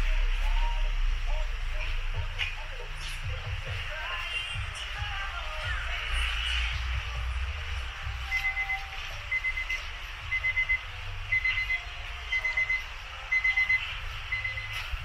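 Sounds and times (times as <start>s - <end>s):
electronic alarm beeping: 8.1s - 15.0s.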